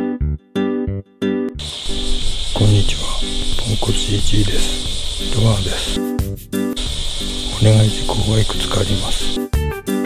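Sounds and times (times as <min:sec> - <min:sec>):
soft background music: 0:00.0 - 0:10.0
crickets chirring: 0:01.6 - 0:06.1, 0:06.8 - 0:09.5
man talking: 0:02.5 - 0:06.0, 0:07.5 - 0:09.4.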